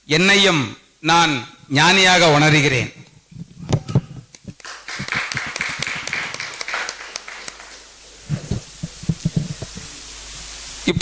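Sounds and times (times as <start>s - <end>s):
audience applauding: 4.6s - 8.2s.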